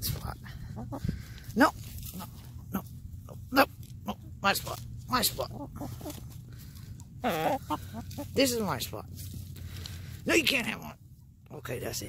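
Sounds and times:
birds pecking in dirt: 0.0s - 11.4s
hen calling: 0.5s - 2.4s, 5.1s - 8.8s.

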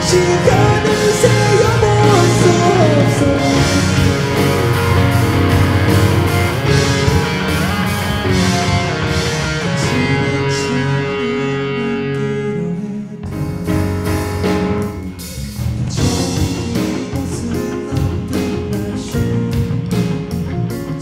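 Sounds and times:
drum kit: 0.0s - 11.2s, 13.2s - 21.0s
bass guitar: 0.0s - 21.0s
electric guitars: 0.0s - 21.0s.

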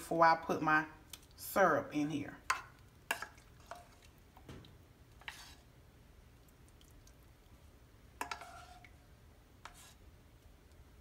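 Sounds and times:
soft wet squishes: 1.0s - 1.4s, 2.4s - 11.0s.

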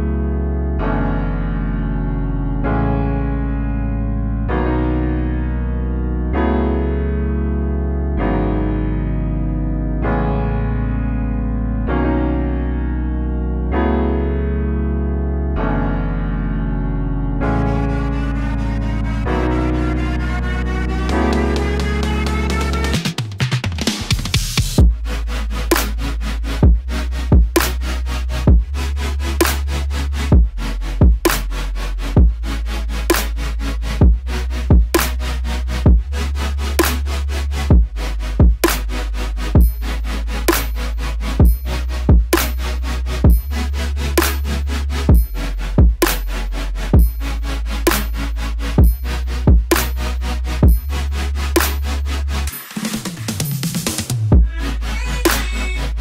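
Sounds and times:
chopped saw-synth chords: 17.4s - 23.3s, 24.1s - 56.0s
kick drums: 24.4s - 25.0s, 26.6s - 27.6s, 28.5s - 28.7s, 30.3s - 31.2s, 32.2s - 32.4s, 34.0s - 34.9s, 35.9s - 36.1s, 37.7s - 38.6s, 39.6s - 39.8s, 41.4s - 42.3s, 43.2s - 43.5s, 45.1s - 46.0s, 47.0s - 47.2s, 48.8s - 49.7s, 50.6s - 50.9s, 54.3s - 54.6s
held sub bass: 24.4s - 52.5s, 54.2s - 56.0s
sub-bass note: 43.2s - 52.1s, 54.3s - 56.0s.

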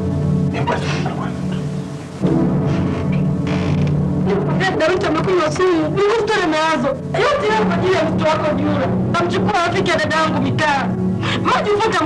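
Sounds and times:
low music drone: 0.0s - 12.0s.

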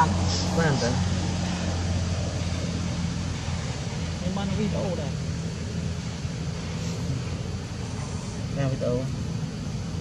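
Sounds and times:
even hiss: 0.0s - 10.0s
low hum and rumble: 0.0s - 10.0s.

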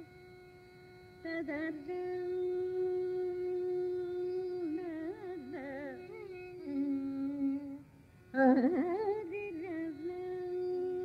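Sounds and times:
tanpura drone: 0.0s - 11.0s
woman singing ornamented melody: 0.0s - 11.0s.

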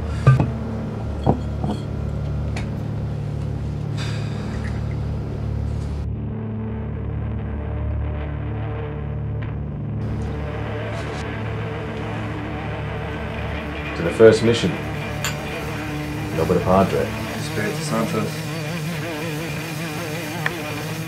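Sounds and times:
low droning background music: 0.0s - 20.2s
short knocks: 0.2s - 0.6s.

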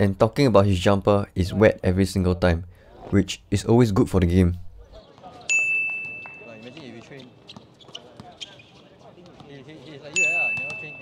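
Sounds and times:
faint voices calling: 4.8s - 11.0s
basketball bouncing on hard court: 6.0s - 9.6s, 10.5s - 11.0s.

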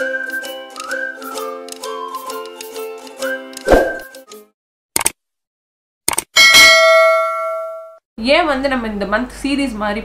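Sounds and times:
quick clicks: 5.0s - 5.2s, 6.1s - 6.3s.

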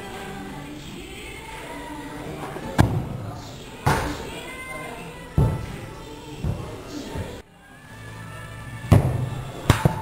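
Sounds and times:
background music: 0.0s - 10.0s
football striking crossbar: 8.9s - 10.0s.

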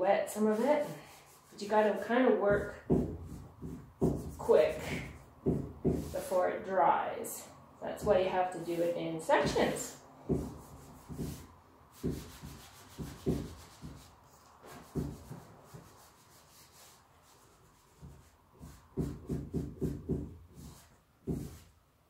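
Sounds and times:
cloth rag wiping wood panel: 0.4s - 2.2s, 8.6s - 21.8s.

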